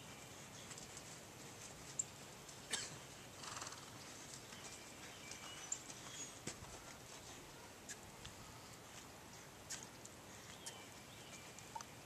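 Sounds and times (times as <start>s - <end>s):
birds chirping: 0.0s - 12.0s
horse walking on sand: 0.0s - 12.0s.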